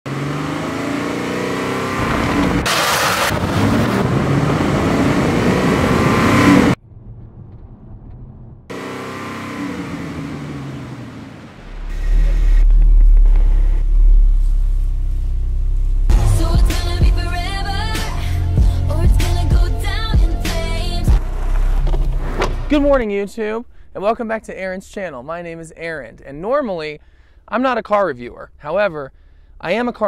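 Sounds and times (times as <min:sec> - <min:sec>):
car engine revving and accelerating: 0:00.1 - 0:06.8, 0:08.7 - 0:17.0
deep steady low rumble: 0:06.7 - 0:08.7, 0:11.5 - 0:19.2.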